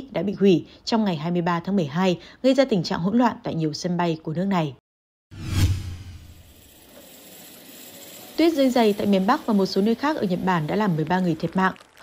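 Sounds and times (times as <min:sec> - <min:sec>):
low rumble: 0:05.4 - 0:06.6.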